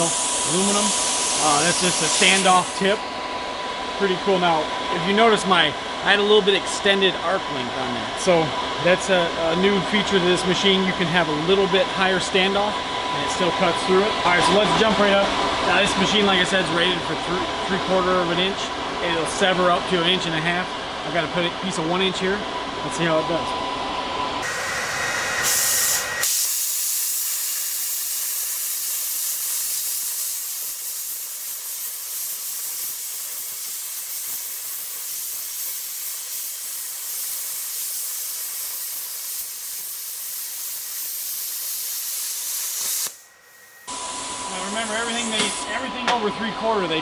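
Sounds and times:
plasma cutter hissing: 0.0 - 3.0, 24.4 - 45.7.

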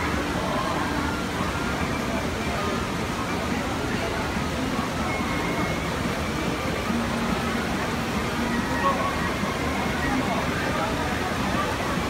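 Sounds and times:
people chattering: 0.0 - 12.0
river water rushing over a step: 0.0 - 12.0.

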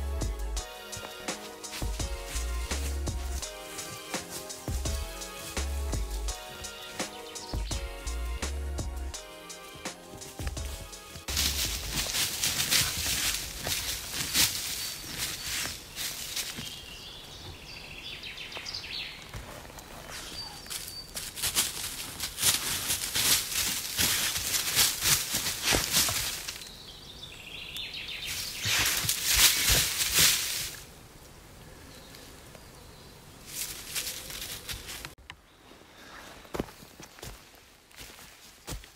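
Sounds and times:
bird calling: 0.6 - 8.4
dry leaves rustling under paws: 0.9 - 7.7, 9.5 - 17.3, 19.2 - 26.8, 28.0 - 31.0, 33.4 - 35.2.

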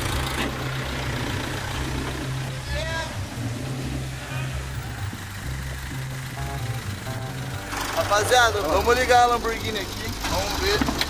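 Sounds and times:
truck engine running at low revs: 0.0 - 11.0.

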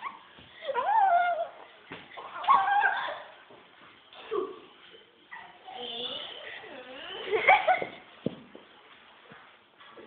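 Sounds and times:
high wavering vocal cries: 0.0 - 1.7, 2.3 - 3.3.

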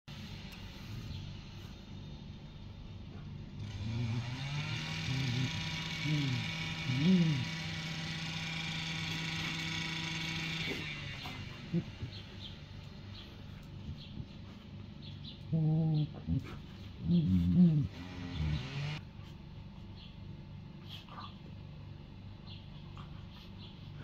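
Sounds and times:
motor humming: 3.6 - 12.9.

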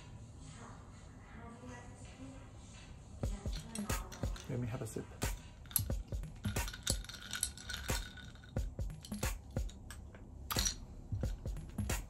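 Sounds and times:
quiet music: 0.0 - 12.0
ice and straw clinking in glass: 3.4 - 4.6, 5.6 - 9.4.

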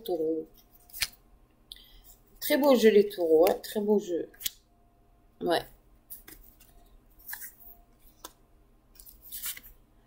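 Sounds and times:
cards sliding and tapping: 6.1 - 8.4, 9.0 - 9.8.

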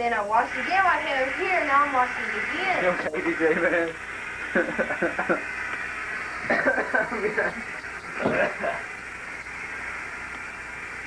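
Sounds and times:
person laughing: 3.4 - 5.6, 6.4 - 8.9.

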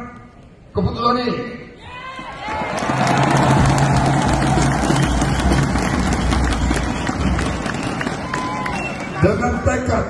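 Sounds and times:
crowd noise: 1.7 - 10.0
audience applauding: 2.2 - 9.6.

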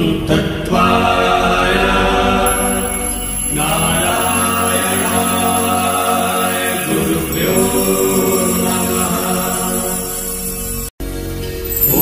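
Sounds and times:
person chanting: 0.0 - 10.2.

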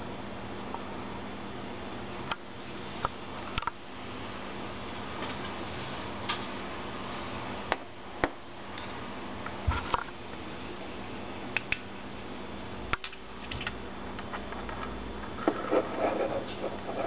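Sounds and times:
low hum and hiss: 0.0 - 17.0.

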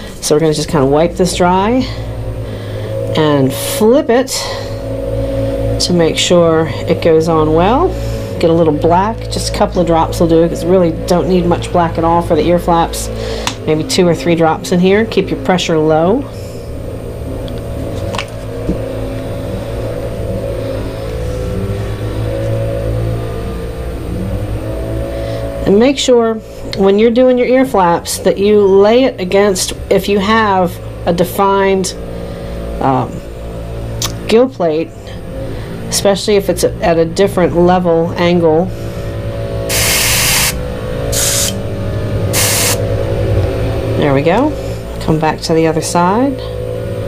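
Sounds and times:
steady low hum: 0.0 - 47.0
vehicle engine revving: 0.0 - 47.0
airbrush spraying hiss: 39.7 - 41.6, 42.3 - 42.8.

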